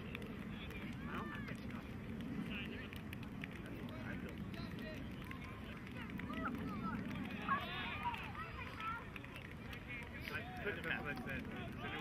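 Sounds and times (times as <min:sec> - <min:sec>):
wind rumble on microphone: 0:00.0 - 0:09.8.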